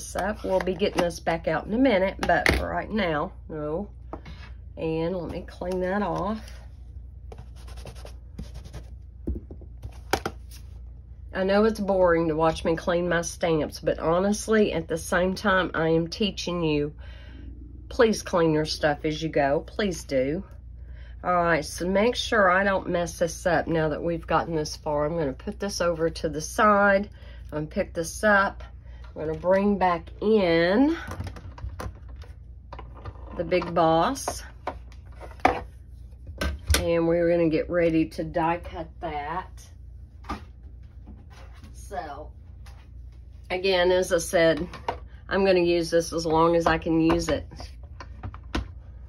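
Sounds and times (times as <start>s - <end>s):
scratchy rubbing on cleaning pad: 7.4s - 9.0s.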